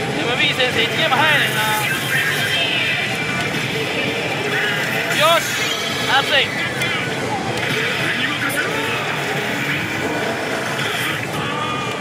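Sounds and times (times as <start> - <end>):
character voices: 0.0 - 12.0
gaming hall noise: 0.0 - 12.0.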